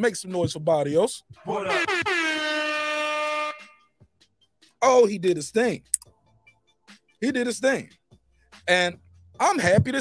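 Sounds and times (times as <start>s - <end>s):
air horn: 1.4s - 4.0s.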